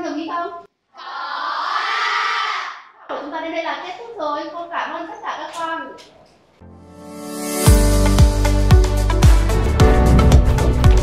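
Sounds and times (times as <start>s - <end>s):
children shouting in unison: 1.0s - 3.0s.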